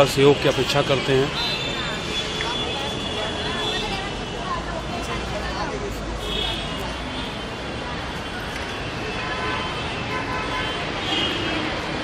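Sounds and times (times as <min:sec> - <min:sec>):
crowd voices: 0:00.0 - 0:12.0
steady traffic: 0:00.0 - 0:12.0.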